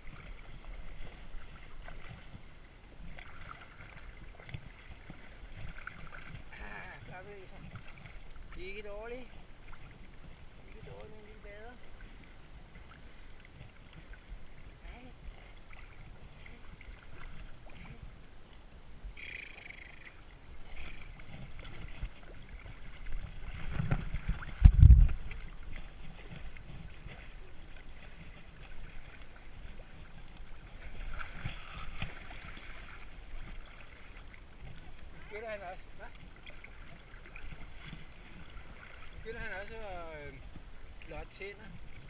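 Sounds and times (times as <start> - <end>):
water sloshing around wading horses: 0.0 - 42.0.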